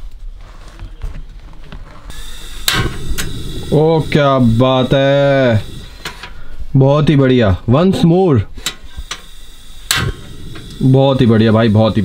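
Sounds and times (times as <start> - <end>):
gas hissing: 2.1 - 12.0
igniter click-pop: 2.6 - 3.8, 8.6 - 10.8.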